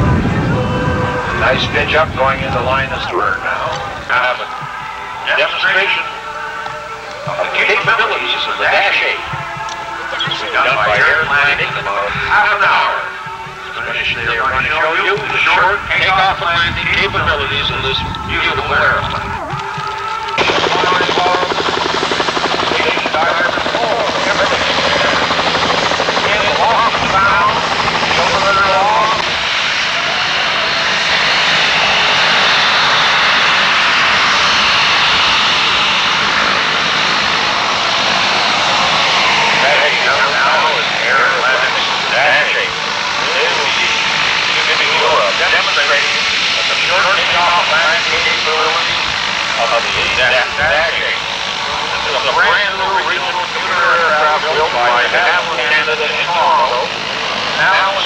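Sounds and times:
people talking: 0:00.0 - 0:06.2, 0:07.2 - 0:21.8, 0:22.5 - 0:32.2, 0:38.5 - 0:58.0
helicopter drone: 0:00.0 - 0:58.0
turboprop engines whining: 0:00.0 - 0:58.0.

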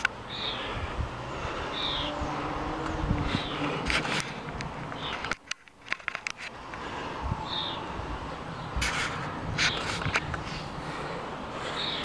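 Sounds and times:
sharp clicks and knocks: 0:03.8 - 0:06.6.

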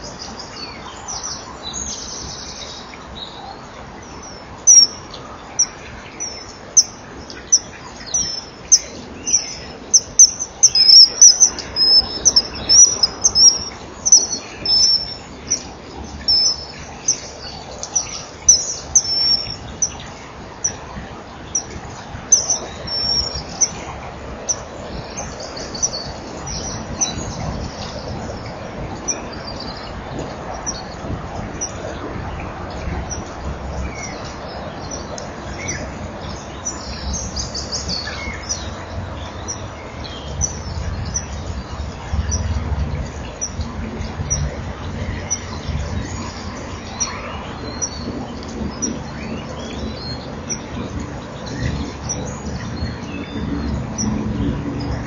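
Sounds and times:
bird chirping: 0:00.0 - 0:20.8, 0:21.5 - 0:23.9
steady background noise: 0:00.0 - 0:55.0.

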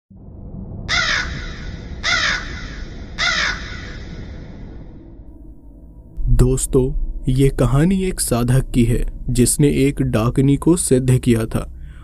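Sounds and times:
low rumbling drone: 0:00.1 - 0:12.0
bird harsh calls: 0:00.9 - 0:04.6.

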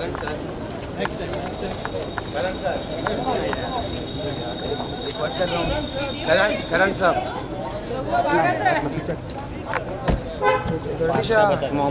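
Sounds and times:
men's voices: 0:00.0 - 0:11.9.

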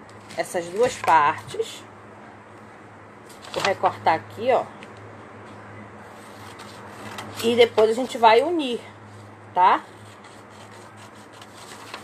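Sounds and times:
scissors cutting paper: 0:10.1 - 0:12.0.

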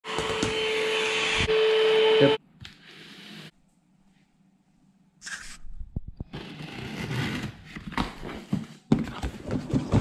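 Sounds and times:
vacuum cleaner running: 0:00.0 - 0:03.5.

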